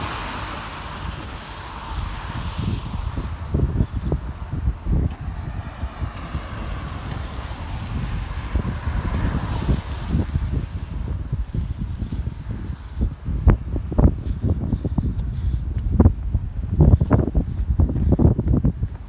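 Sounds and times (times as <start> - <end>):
car passing: 0.0 - 13.9
wind buffeting microphone: 0.0 - 19.0.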